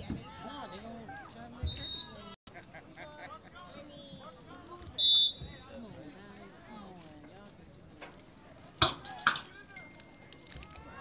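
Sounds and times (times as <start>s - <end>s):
referee's whistle blast: 5.0s - 5.5s.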